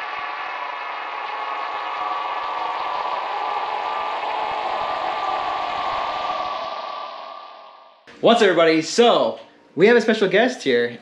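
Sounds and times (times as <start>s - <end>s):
synthesized drone chord: 0.0s - 8.1s.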